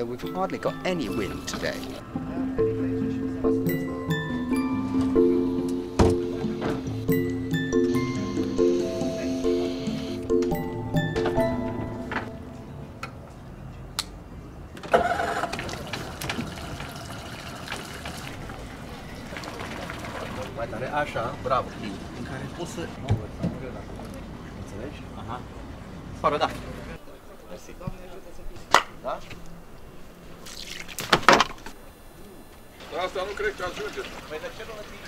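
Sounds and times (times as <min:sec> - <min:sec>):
outboard motor starting and idling: 0:14.9 - 0:22.8.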